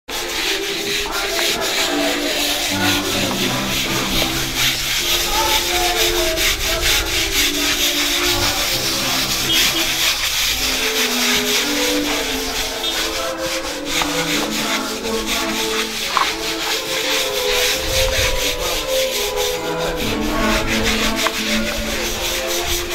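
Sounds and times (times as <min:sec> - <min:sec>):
brushes scrubbing wet concrete: 0:00.1 - 0:22.9
music with held notes: 0:00.1 - 0:22.9.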